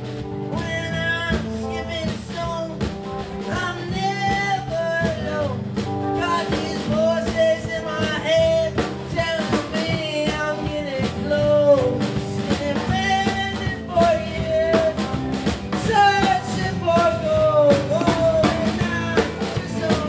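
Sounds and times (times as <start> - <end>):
person singing: 0.0 - 20.0
strummed guitar: 0.0 - 20.0.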